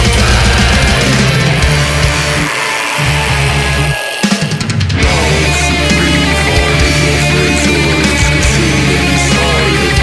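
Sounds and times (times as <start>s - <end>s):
heavy metal music: 0.0s - 10.0s.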